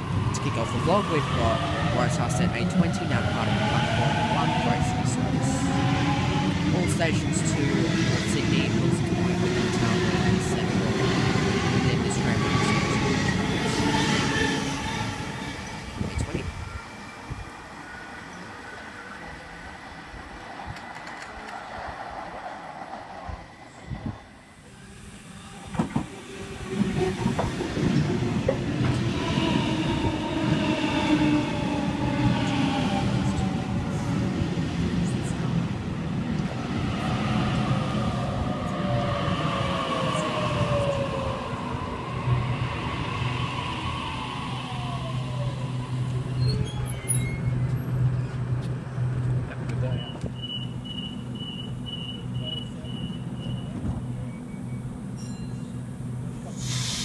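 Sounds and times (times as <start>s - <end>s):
train wheel noise: 20.6s - 24.3s, 25.5s - 37.8s.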